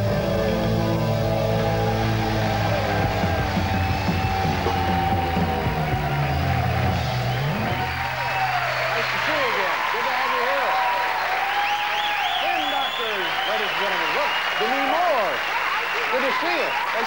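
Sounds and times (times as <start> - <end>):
rock band holding a chord: 0.0 - 9.0.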